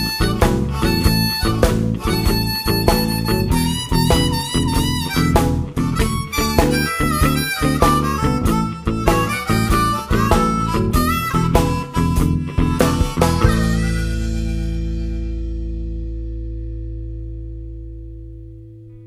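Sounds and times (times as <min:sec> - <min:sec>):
harmonica: 0:00.0 - 0:15.8
blues band playing: 0:00.0 - 0:18.1.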